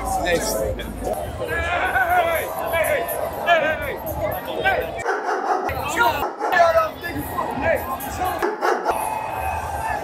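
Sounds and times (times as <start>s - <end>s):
crowd of fans talking: 0.0s - 10.0s.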